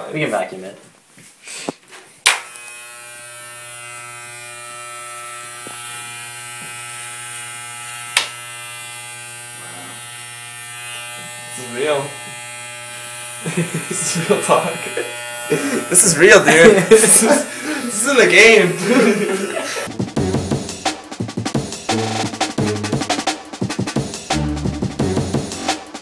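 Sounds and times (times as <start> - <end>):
hair clippers buzzing: 2.2 - 19.9.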